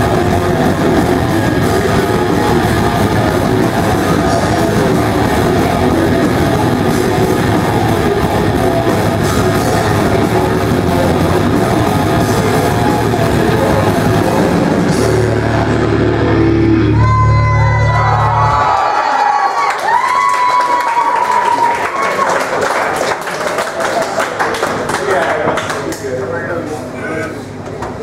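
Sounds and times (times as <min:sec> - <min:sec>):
heavy low guitar chord: 0:00.0 - 0:17.8
ringing guitar tones: 0:00.0 - 0:18.4
crowd cheering and clapping: 0:00.0 - 0:26.1.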